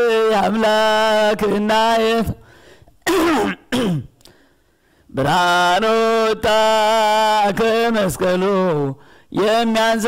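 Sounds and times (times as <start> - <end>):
man clearing his throat: 3.0 - 4.2.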